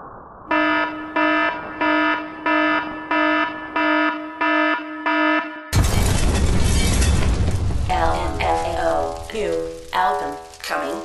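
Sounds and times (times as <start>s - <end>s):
alarm-like buzzer beeps: 0.5s - 5.8s.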